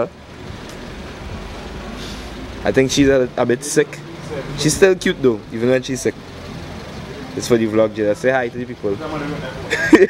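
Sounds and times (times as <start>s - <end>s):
vehicle rumble: 0.0s - 10.0s.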